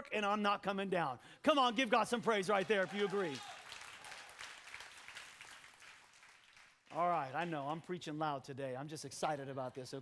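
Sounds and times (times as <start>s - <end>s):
crowd applauding: 2.4s - 7.6s.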